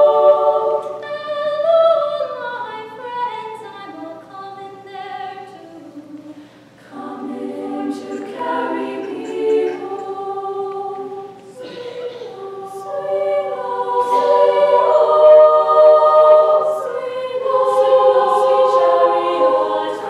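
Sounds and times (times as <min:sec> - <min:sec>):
girls' choir singing in harmony: 0:00.0 - 0:20.0.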